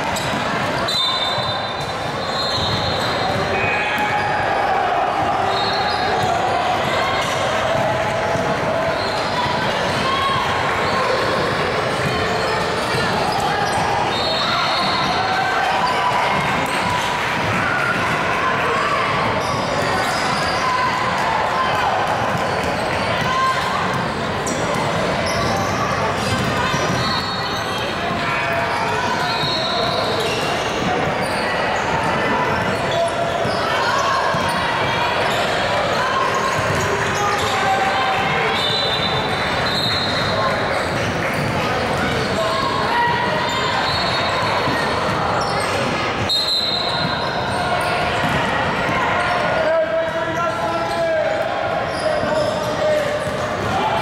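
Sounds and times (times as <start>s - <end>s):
sneakers squeaking on court: 0.1s - 4.3s, 22.2s - 28.0s, 28.8s - 37.6s, 38.4s - 42.6s, 43.3s - 48.4s.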